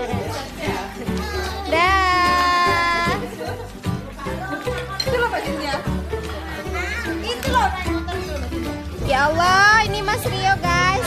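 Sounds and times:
background music with bass line: 0.0s - 11.0s
children shouting and calling: 6.4s - 8.4s.

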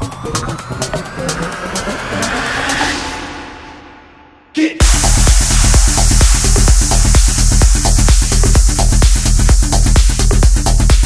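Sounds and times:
noise riser: 0.0s - 10.0s
rising synth sweep: 0.0s - 10.0s.

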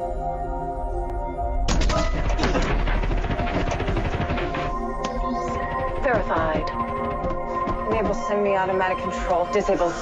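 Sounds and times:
rumbling burst of small impacts: 1.7s - 8.8s
electronic score: 1.8s - 10.0s.

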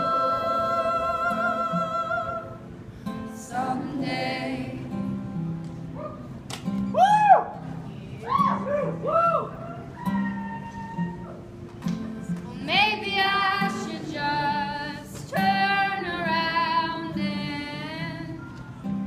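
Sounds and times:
person singing with vibrato: 0.0s - 2.7s
acoustic guitar picking: 0.0s - 19.0s.

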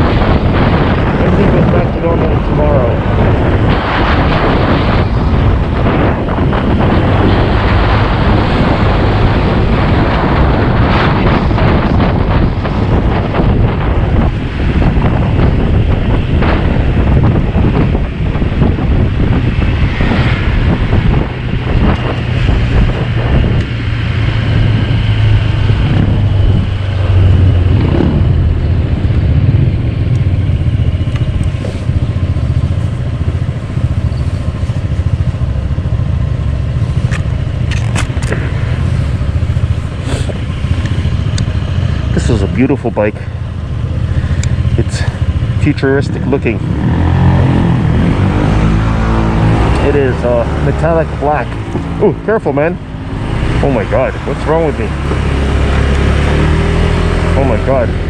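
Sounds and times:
wind noise on microphone: 0.0s - 58.0s
scooter engine running: 22.2s - 42.2s.

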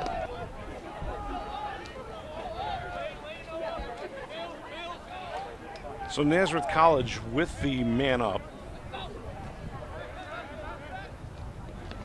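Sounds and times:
players shouting short calls: 0.0s - 11.1s
low outdoor murmur: 0.0s - 12.0s.

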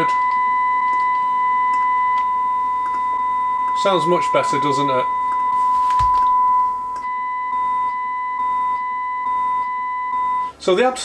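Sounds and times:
sine-wave test tone from radio: 0.0s - 10.7s.

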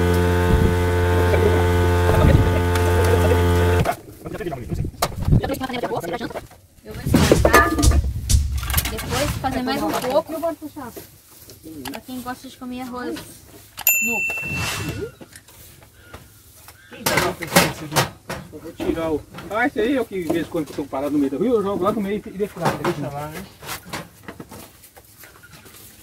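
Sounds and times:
voices talking: 1.0s - 8.0s, 8.8s - 23.6s
short electronic chime: 13.9s - 15.2s.

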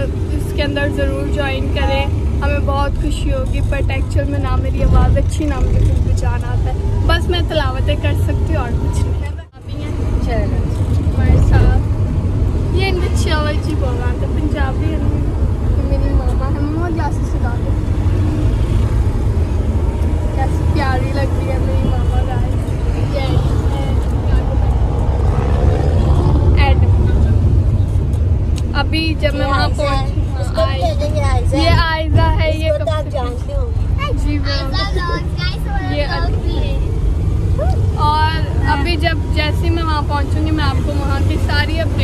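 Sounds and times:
engine and road rumble in van: 0.0s - 42.0s.

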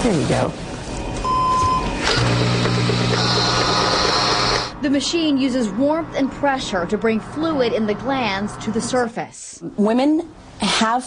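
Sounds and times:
suction pump humming: 2.0s - 4.8s.

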